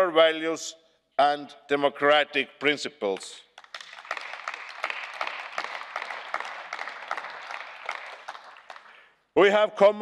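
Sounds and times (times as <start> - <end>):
crowd applauding: 3.6 - 9.1.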